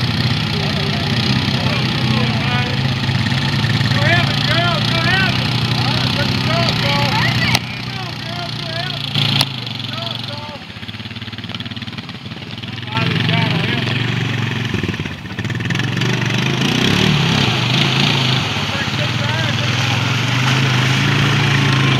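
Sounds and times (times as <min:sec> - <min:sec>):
atv engine revving: 0:00.0 - 0:21.9
water splashing: 0:00.0 - 0:21.9.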